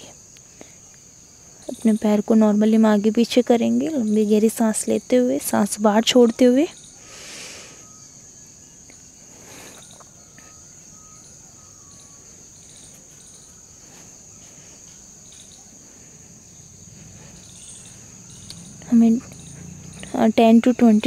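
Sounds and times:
insects trilling: 0.0 - 21.0
faint whistled notes: 6.2 - 15.8.

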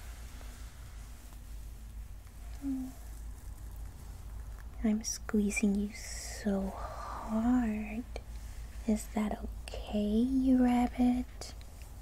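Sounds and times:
low steady background hum: 0.0 - 12.0
soft vocal hum: 2.3 - 12.0.

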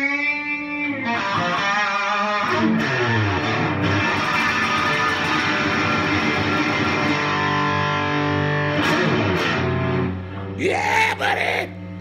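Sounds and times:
electric guitar playing: 0.0 - 12.0.

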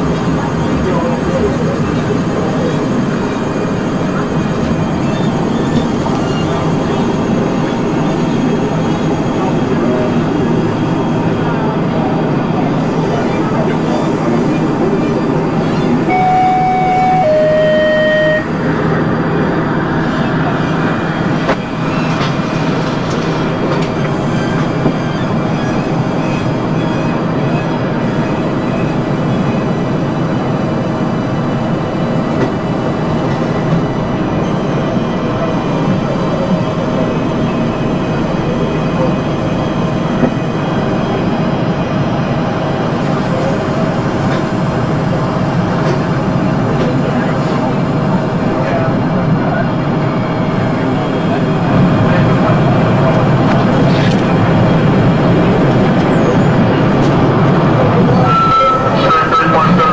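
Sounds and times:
dense noise drone: 0.0 - 59.9
two-note falling electronic tone: 16.1 - 18.6.

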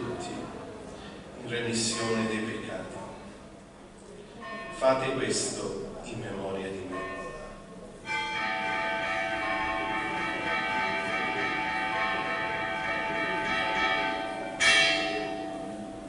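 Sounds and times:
altar bells ringing: 4.4 - 16.0.

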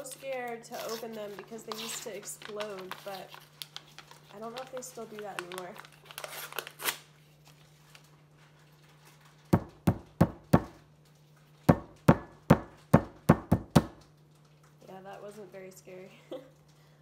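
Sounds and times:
cardboard tube knocking on countertop: 9.6 - 10.8, 11.7 - 14.0.

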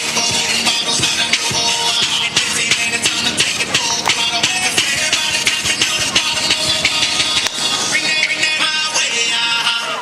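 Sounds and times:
music with quick beat: 0.0 - 9.8.

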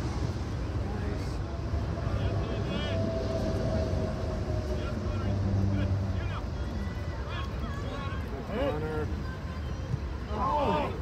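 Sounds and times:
low steady rumble: 0.0 - 11.0
distant voices shouting: 1.5 - 11.0.

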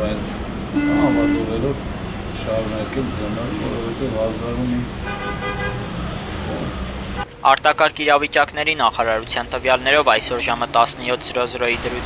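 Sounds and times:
street traffic rumble: 0.0 - 12.0
car horn: 0.8 - 1.8, 5.0 - 5.9.

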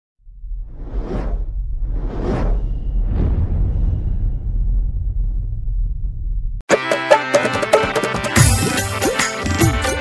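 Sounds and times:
deep bass rumble: 0.2 - 6.6
whoosh: 0.3 - 6.6.

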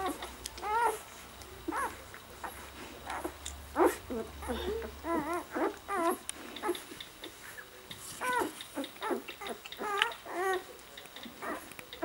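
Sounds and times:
puppies squeaking and whimpering: 0.0 - 12.0.

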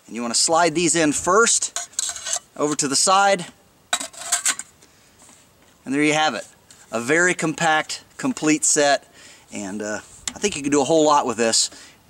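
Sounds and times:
metallic clinks and scrapes: 1.6 - 2.9, 3.9 - 4.8.

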